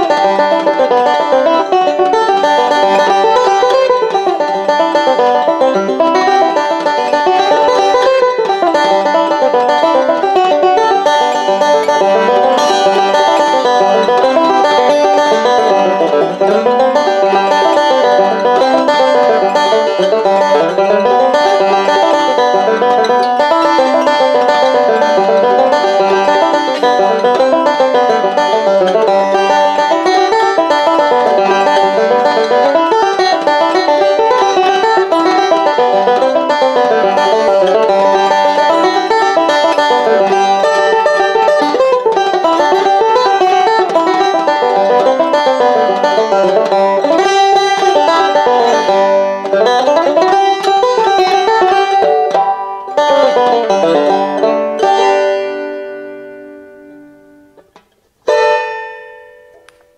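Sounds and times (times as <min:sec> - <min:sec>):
banjo picking a reel: 0:00.0 - 0:59.9.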